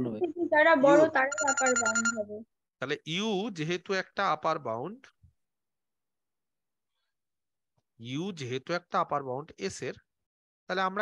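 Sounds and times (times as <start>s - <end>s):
voices over video call: 0.0s - 11.0s
high electronic ringing tone: 1.3s - 2.2s.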